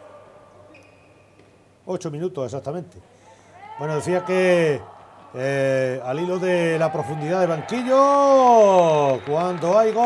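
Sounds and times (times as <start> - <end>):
sports hall ambience: 0.0 - 10.0.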